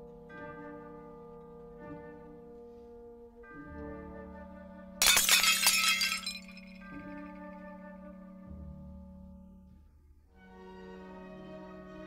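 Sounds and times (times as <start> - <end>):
glass shattering: 5.0 - 6.8.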